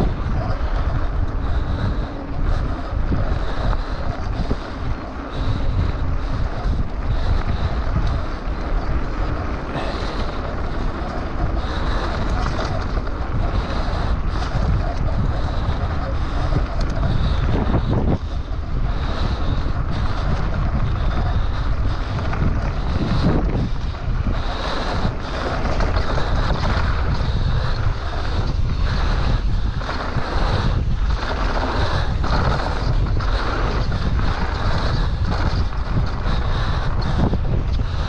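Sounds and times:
bike rattling and knocking: 0.0 - 38.0
tyres rumbling on gravel trail: 0.0 - 38.0
wind rushing over microphone: 0.0 - 38.0.

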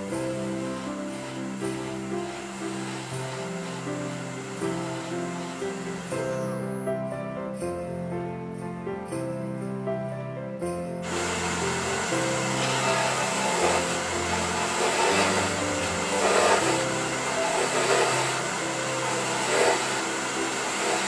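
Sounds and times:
chisel cutting spinning wood: 0.0 - 6.5, 11.0 - 21.0
wood lathe running: 0.0 - 6.5, 11.0 - 21.0
background music: 0.0 - 21.0.

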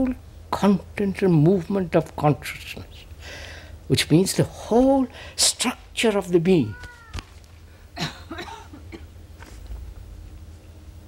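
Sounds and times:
steady low hum: 0.0 - 11.0
person coughing: 8.0 - 9.1.

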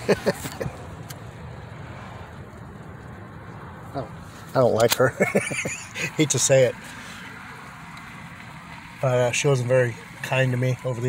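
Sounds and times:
man laughing: 0.0 - 0.8, 4.9 - 6.3
vehicle cabin rumble: 0.0 - 11.0.

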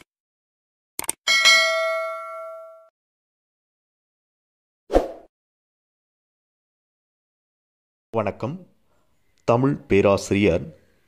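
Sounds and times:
bell ding: 1.3 - 2.9.

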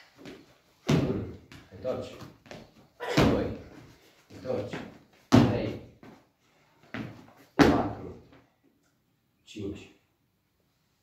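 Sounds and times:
thud of child landing jump: 3.0 - 3.6
man counting aloud: 3.0 - 3.7, 5.4 - 6.0.

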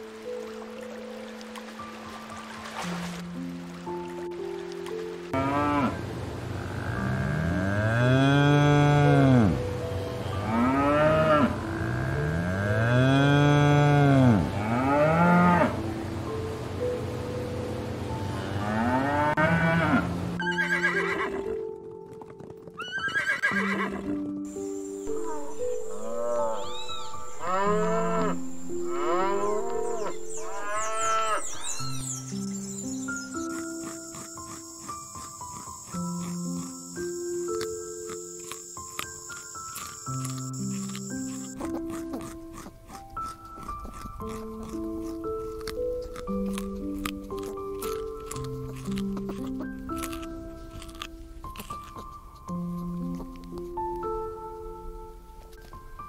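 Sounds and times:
background music: 0.0 - 56.0
buffalo lowing: 5.4 - 15.8, 25.0 - 32.0.

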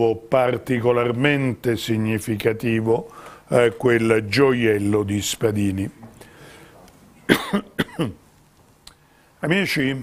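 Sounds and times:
man coughing: 7.3 - 8.2.

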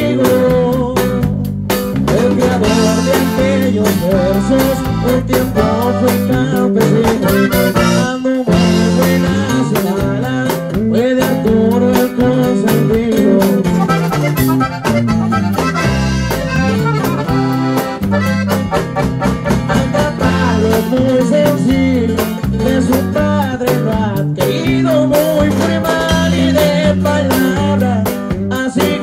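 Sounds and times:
stepping bass line: 0.0 - 29.0
strummed guitar rhythm: 0.0 - 29.0
accordion melody: 1.7 - 29.0.

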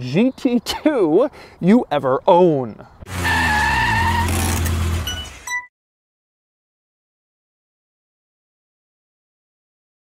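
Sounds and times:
car engine running with whine: 3.1 - 5.5.

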